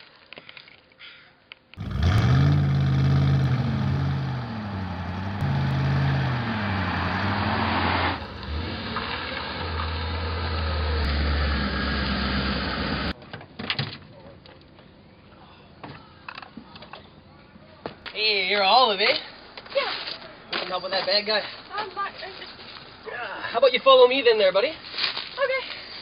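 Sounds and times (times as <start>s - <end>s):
truck engine revving: 1.8s - 13.2s.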